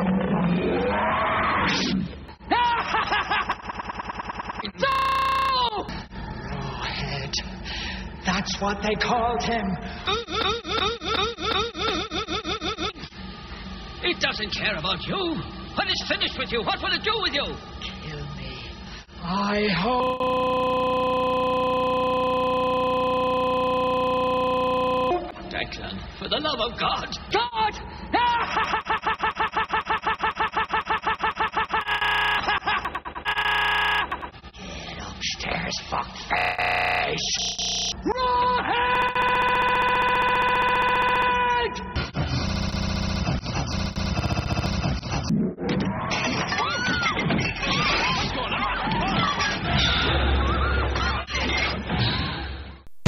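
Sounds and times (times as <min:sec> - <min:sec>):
looped scream buzzing drone: 0:19.8 - 0:25.5, 0:27.9 - 0:35.2, 0:36.1 - 0:45.3.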